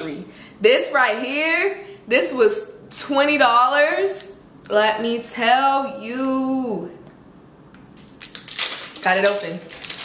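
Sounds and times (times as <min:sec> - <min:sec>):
packaging tearing and crackling: 0:08.0 - 0:10.0.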